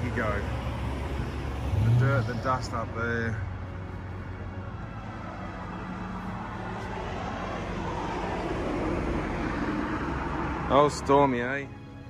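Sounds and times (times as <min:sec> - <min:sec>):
road traffic noise: 0:00.0 - 0:12.0
vehicle passing: 0:00.0 - 0:12.0.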